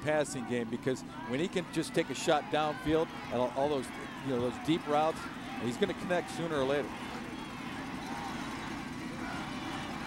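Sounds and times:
murmur of stadium crowd: 0.0s - 10.0s.

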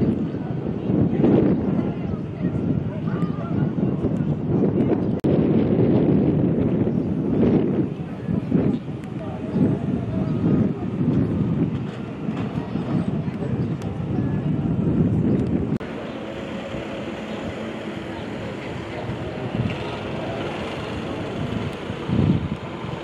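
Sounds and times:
crowd chatter: 0.0s - 23.0s.

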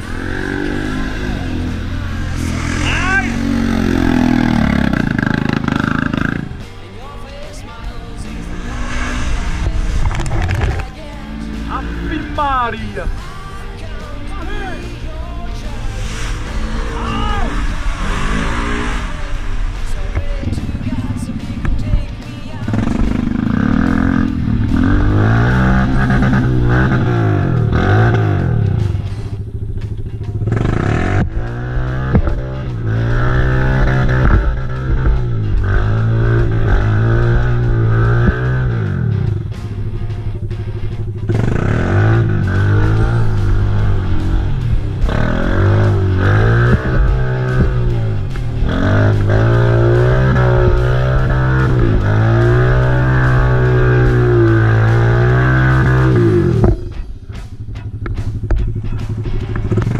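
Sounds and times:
quad bike engine revving: 0.0s - 6.8s, 7.6s - 59.9s
music: 0.0s - 59.9s.

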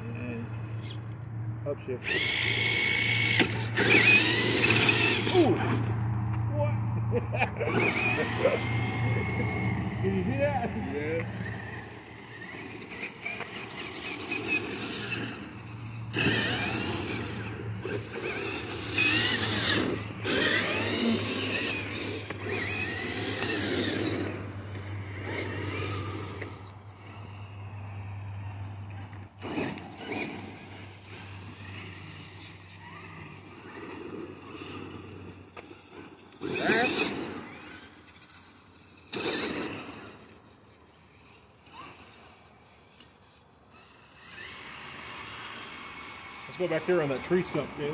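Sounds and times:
toy car motor whining: 0.2s - 6.4s, 7.6s - 47.9s.

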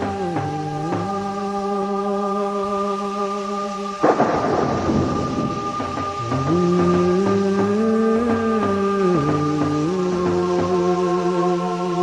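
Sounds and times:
rumbling crash: 4.0s - 7.8s.

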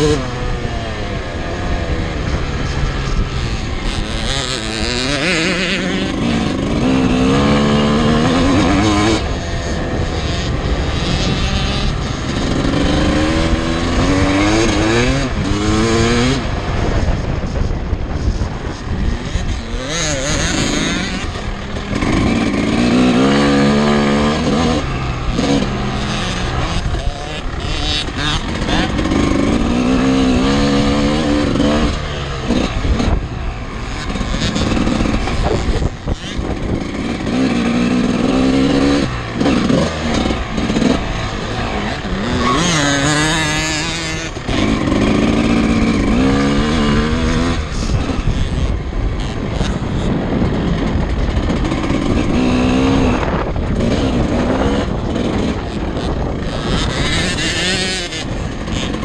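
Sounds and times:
motocross bike engine revving: 0.0s - 59.0s.

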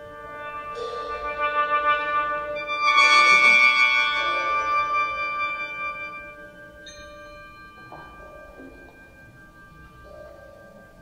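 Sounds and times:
sheng chord: 0.0s - 11.0s
soft sustained notes: 0.0s - 11.0s
struck metal tone ringing: 0.0s - 11.0s.

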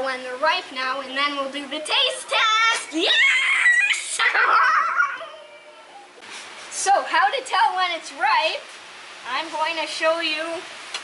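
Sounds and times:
child cheering excitedly: 3.0s - 4.2s.

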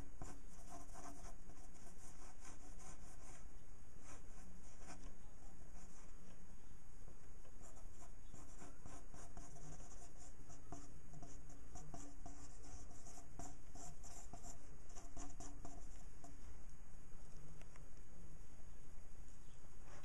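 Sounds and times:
low background hum: 0.0s - 20.0s
ink pen scratching on paper: 0.2s - 3.4s, 7.6s - 16.0s.

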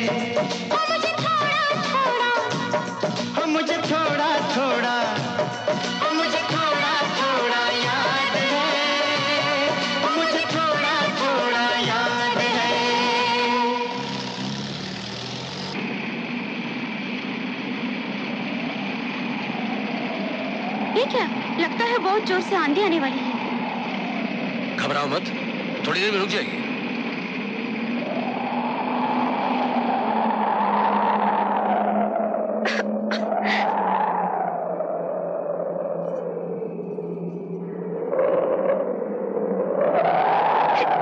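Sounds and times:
jeep engine running: 0.0s - 34.5s
howling wind: 12.7s - 41.0s.

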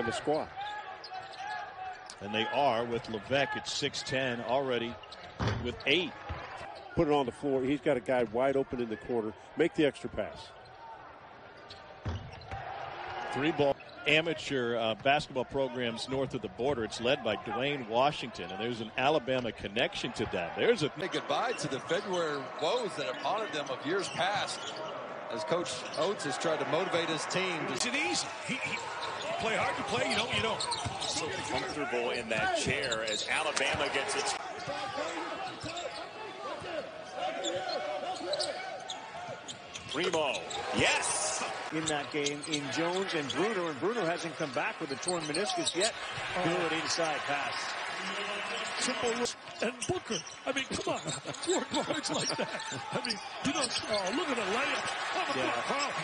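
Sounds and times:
faint arena noise: 0.0s - 56.0s
sneaker squeaks: 5.0s - 7.0s, 11.6s - 12.6s, 21.5s - 25.0s, 28.5s - 46.0s, 47.1s - 56.0s.

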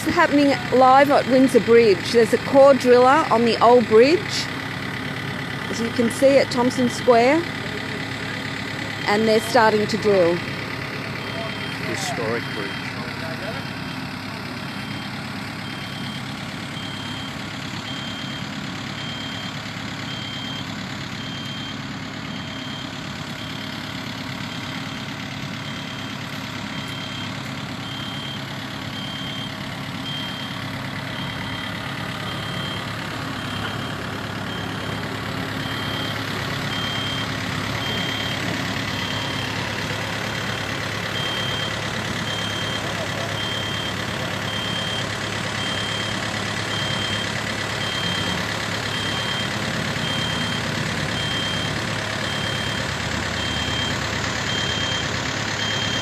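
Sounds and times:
drilling rig engine drone: 0.0s - 56.0s
electronic warning beeper: 11.2s - 14.0s, 26.7s - 39.6s, 40.4s - 52.8s.

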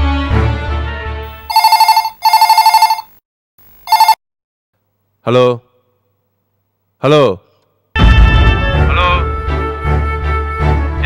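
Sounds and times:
electronic telephone ringing: 1.3s - 4.2s.

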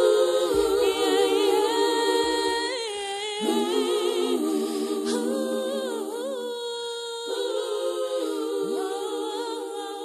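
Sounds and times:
voices humming in harmony: 0.0s - 10.0s.

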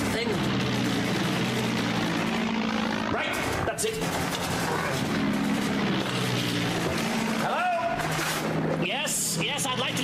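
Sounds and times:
aircraft engines droning: 0.0s - 10.0s.

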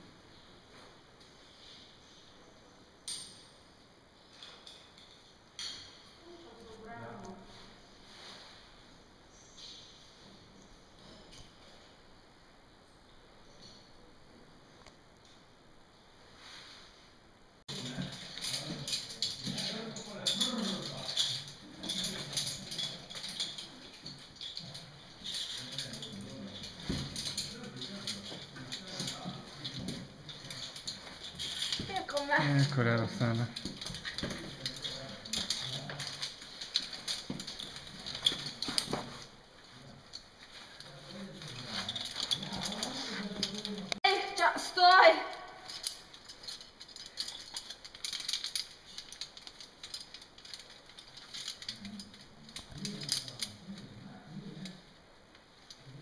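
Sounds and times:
metallic clinks of climbing hardware: 3.0s - 3.7s, 4.3s - 6.2s, 17.7s - 39.3s, 40.0s - 44.5s, 45.6s - 53.8s.

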